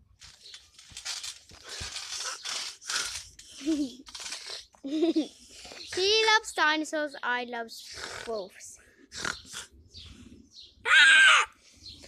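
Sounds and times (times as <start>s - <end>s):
child laughing: 3.6s - 4.1s, 4.8s - 5.4s
child imitating animal cry: 10.8s - 11.6s.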